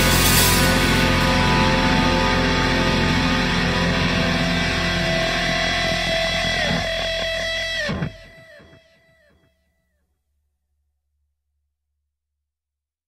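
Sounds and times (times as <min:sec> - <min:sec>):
progressive rock band playing: 0:00.0 - 0:08.8.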